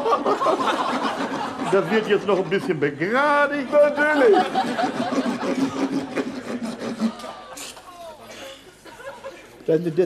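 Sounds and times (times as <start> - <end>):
dental rasp scraping horse teeth: 1.0 - 2.9, 3.5 - 7.8.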